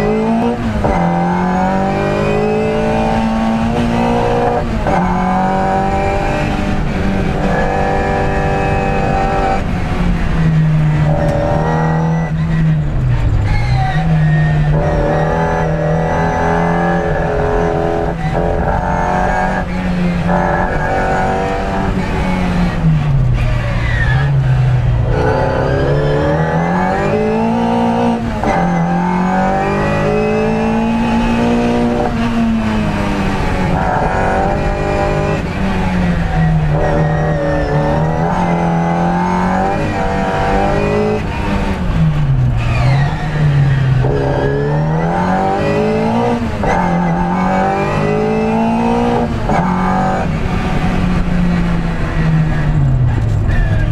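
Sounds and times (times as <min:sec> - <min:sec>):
car engine revving: 0:00.0 - 0:53.9.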